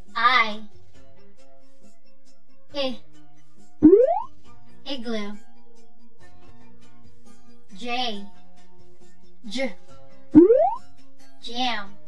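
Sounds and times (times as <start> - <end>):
soft children's background music: 0.0 - 12.0
cartoon upward pitch glide: 3.8 - 4.3, 10.4 - 10.8.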